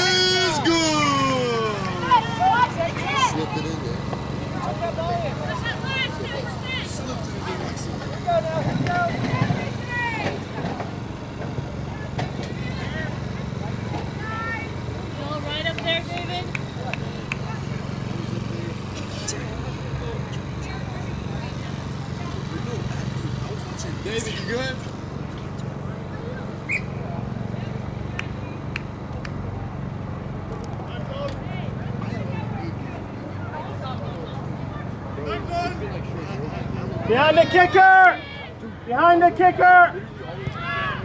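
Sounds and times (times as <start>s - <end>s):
distant voices calling: 0.0s - 29.4s.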